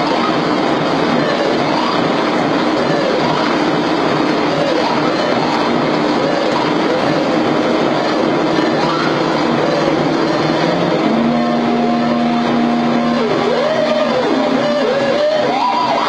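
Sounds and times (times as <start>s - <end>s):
electronic noise music: 0.0s - 16.0s
steady held tones: 0.0s - 16.0s
swooping pitch glides: 0.0s - 16.0s.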